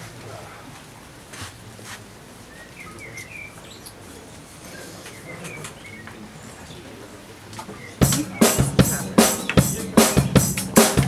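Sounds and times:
low background hush: 0.0 - 11.0
small birds chirping: 2.4 - 11.0.

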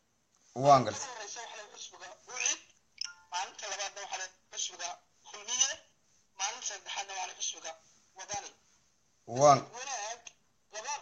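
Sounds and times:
man talking: 0.5 - 1.0, 9.3 - 9.8.

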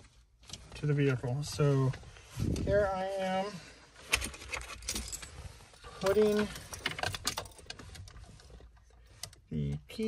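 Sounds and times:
car keys jangling on ring: 4.6 - 7.7.

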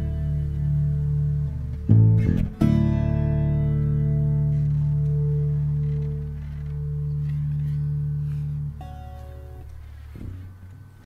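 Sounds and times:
bass and acoustic guitar chord ringing: 0.0 - 11.0.

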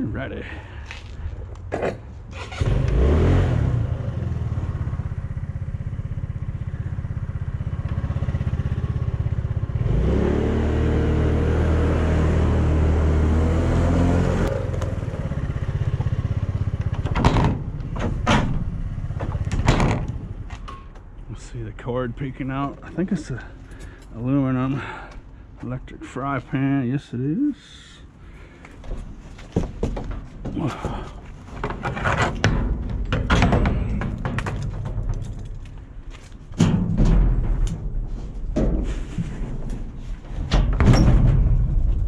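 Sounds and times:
small motorcycle engine revving: 2.4 - 5.0, 7.9 - 16.6
engine knocks: 14.5 - 21.0, 28.8 - 42.0.

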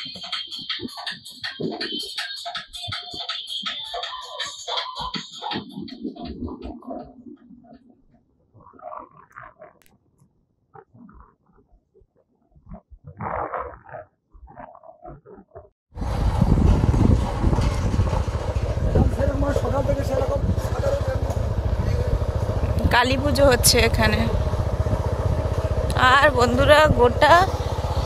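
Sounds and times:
motorcycle engine: 16.0 - 28.0
wind rushing on microphone: 16.0 - 28.0.

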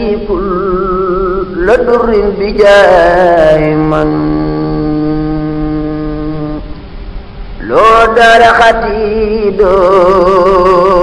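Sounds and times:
man chanting: 0.0 - 6.8, 7.6 - 11.0.

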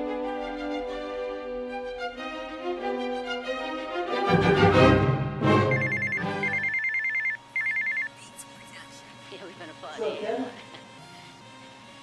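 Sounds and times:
phone ringing electronic trill: 5.6 - 8.2.

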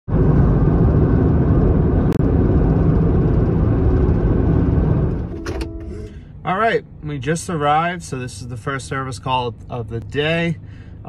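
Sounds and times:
road and engine rumble in van: 0.0 - 11.0.

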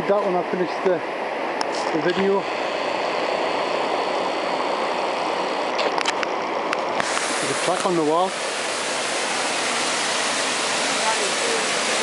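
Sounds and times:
river water rushing: 0.0 - 12.0.

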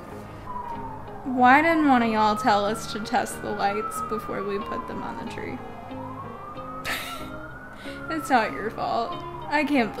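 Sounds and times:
background music with low notes: 0.0 - 10.0
siren wailing: 0.2 - 10.0.

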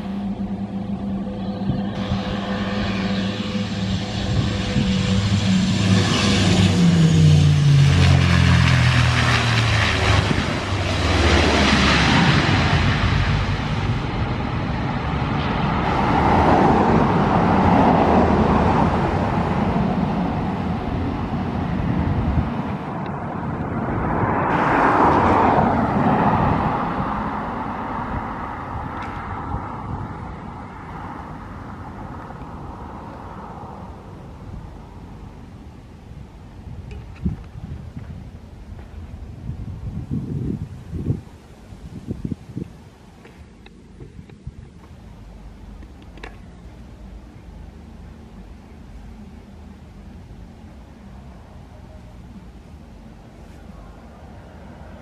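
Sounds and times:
turboprop plane landing: 0.0 - 55.0.

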